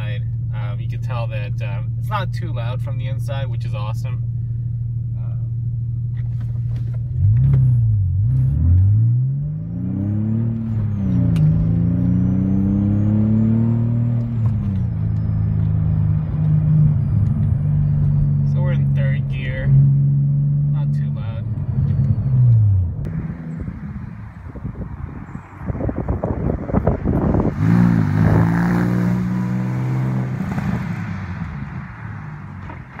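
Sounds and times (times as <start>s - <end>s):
car engine accelerating through gears: 6.1s - 33.0s
car accelerating past outside: 7.3s - 18.4s, 21.6s - 33.0s.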